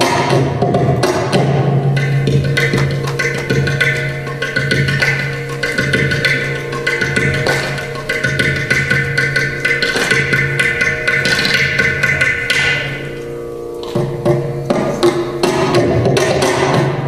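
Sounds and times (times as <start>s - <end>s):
fast hand drum strokes: 0.0s - 13.2s.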